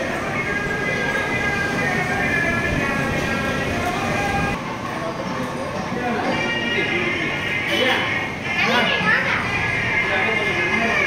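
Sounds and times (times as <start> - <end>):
background music: 0.0 - 4.6
children calling and chattering: 0.0 - 11.0.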